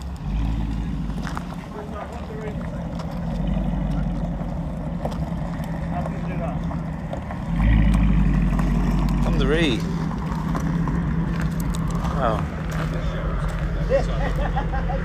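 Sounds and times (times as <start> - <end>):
car engine rumble: 0.0 - 15.0
car tyres on gravel: 0.0 - 15.0.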